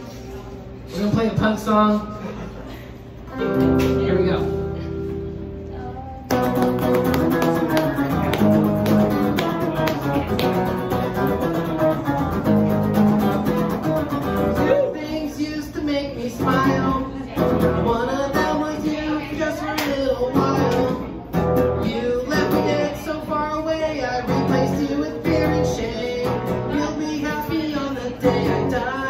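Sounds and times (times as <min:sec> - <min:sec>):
electric guitar strummed hard: 0:06.3 - 0:14.8.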